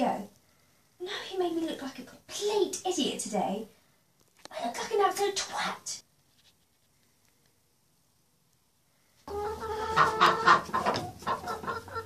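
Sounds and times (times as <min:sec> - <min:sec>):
chickens clucking: 0:09.3 - 0:12.0.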